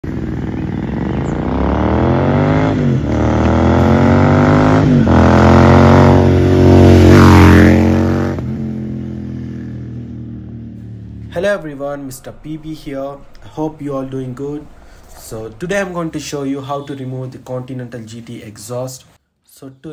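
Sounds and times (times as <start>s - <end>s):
motorcycle engine accelerating: 0.0s - 16.8s.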